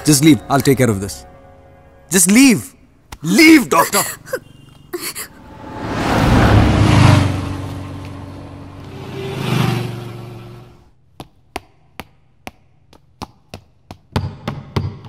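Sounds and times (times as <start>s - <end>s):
vehicle passing by: 5.3s - 10.9s
footsteps running up stairs: 11.1s - 15.0s.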